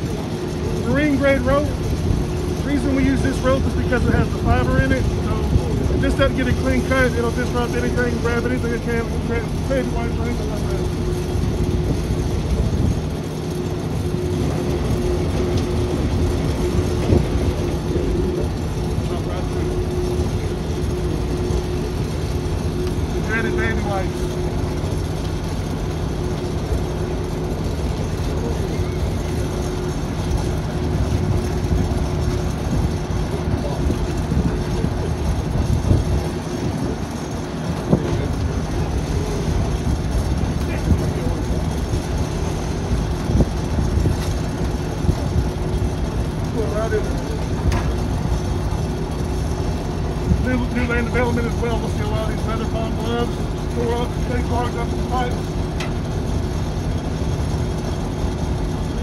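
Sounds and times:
churning water: 0.0s - 59.0s
pump humming: 0.0s - 59.0s.

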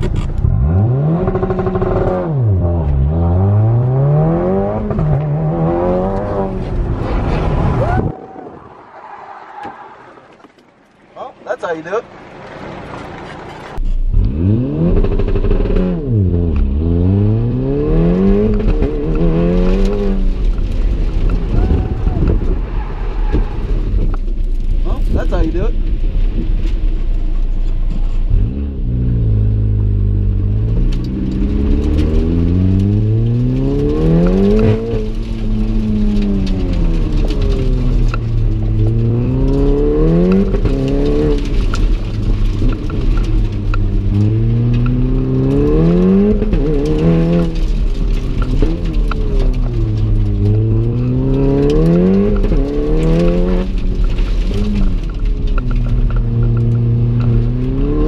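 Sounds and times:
car engine accelerating and shifting: 0.0s - 8.1s, 12.1s - 58.0s.

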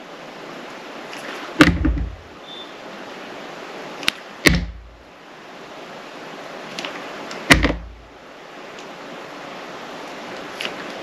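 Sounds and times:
sharp snaps with thud: 4.1s - 4.9s, 7.5s - 8.0s.

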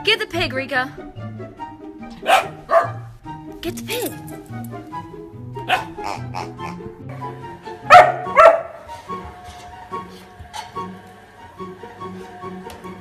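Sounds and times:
background music: 0.0s - 13.0s
dog barking: 2.2s - 3.1s, 5.6s - 6.4s, 7.8s - 8.8s.

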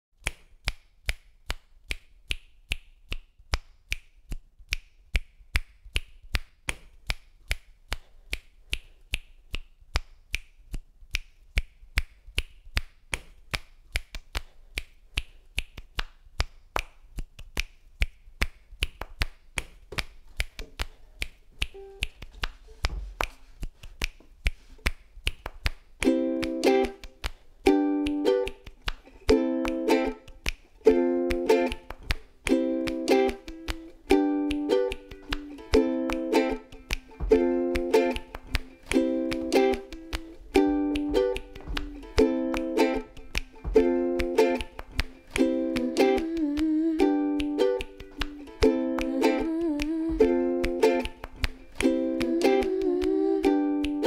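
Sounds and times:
looped finger snaps: 0.2s - 54.0s.

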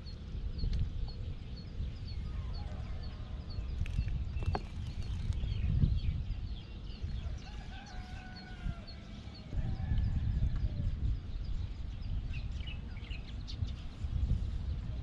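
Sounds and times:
small bird chirping: 0.0s - 14.9s
rooster crowing: 7.2s - 10.5s.

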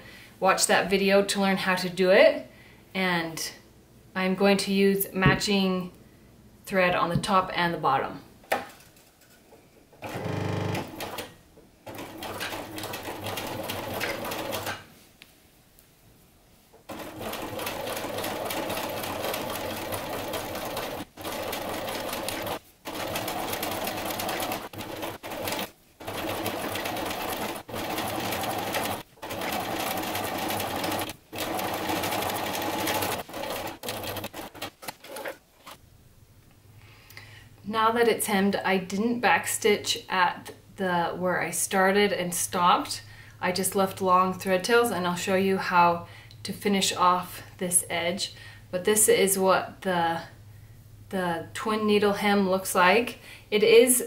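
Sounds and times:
sewing machine stitching: 10.0s - 11.3s, 11.9s - 14.8s, 16.9s - 35.8s.

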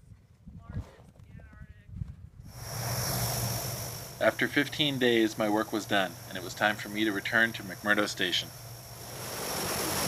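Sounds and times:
low wind rumble on microphone: 0.0s - 7.8s
turboprop engines whining: 2.4s - 10.0s.

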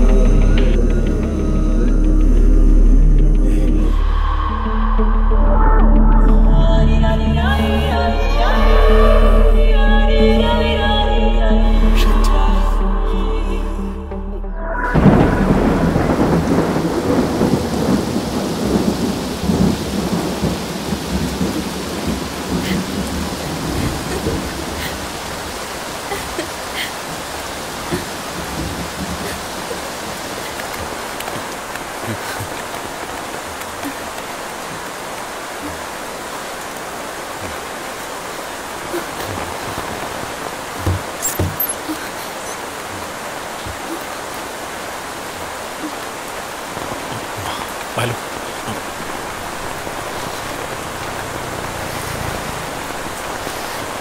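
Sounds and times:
steady rain: 0.0s - 54.0s
rolling thunder: 14.8s - 25.6s.

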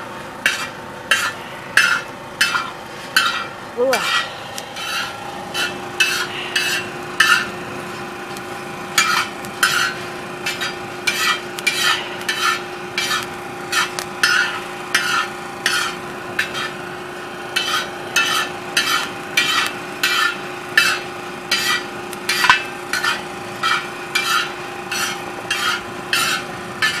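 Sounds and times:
steady low hum: 0.0s - 27.0s
metal spoon scraping coffee beans: 0.5s - 7.5s, 9.0s - 16.8s, 17.6s - 27.0s.

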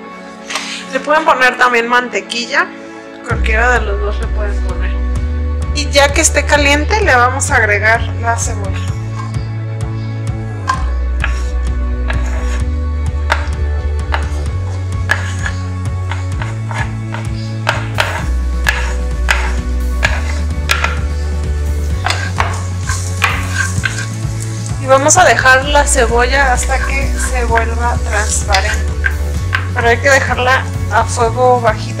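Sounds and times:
background music with bass line: 3.3s - 32.0s
wooden spoon clicks and scrapes: 10.7s - 12.7s, 13.3s - 21.1s, 22.0s - 25.6s, 26.5s - 29.8s
onion sizzling in hot oil: 14.1s - 32.0s.

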